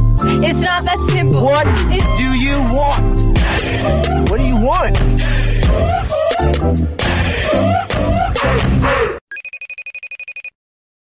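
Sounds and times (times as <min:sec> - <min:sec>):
music: 0:00.0 - 0:09.0
electronic telephone ring: 0:09.3 - 0:10.6.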